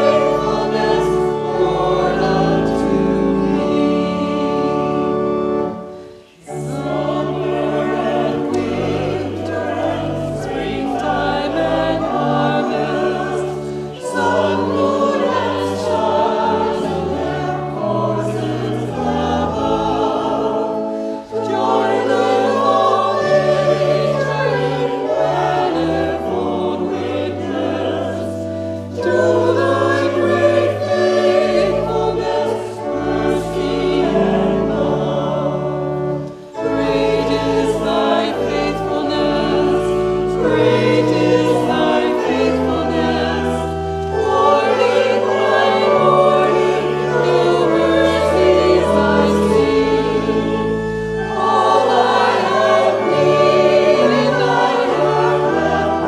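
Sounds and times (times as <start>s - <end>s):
congregation and choir singing hymn: 0.0s - 56.0s
organ accompaniment: 0.0s - 56.0s.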